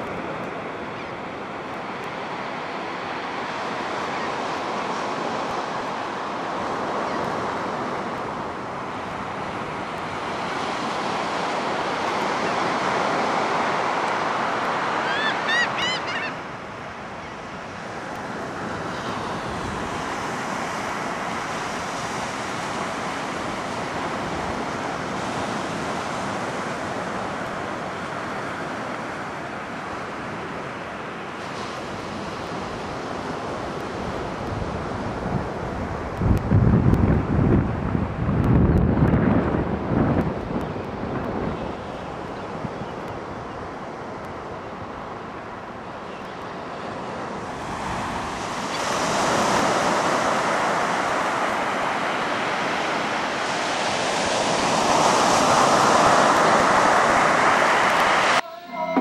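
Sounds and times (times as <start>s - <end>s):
surf breaking on a beach: 0.0s - 59.0s
bird rising calls: 15.0s - 16.4s
wind buffeting microphone: 32.9s - 45.0s.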